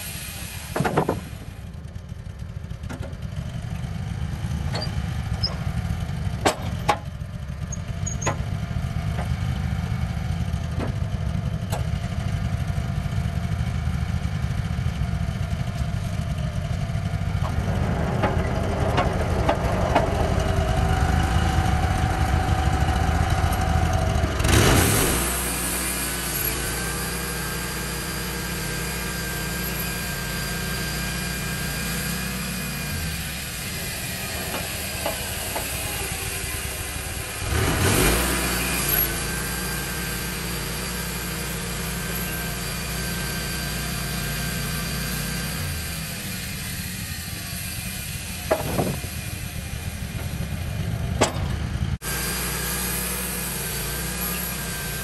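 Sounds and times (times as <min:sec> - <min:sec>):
sawmill gas engine running: 0:00.0 - 0:55.0.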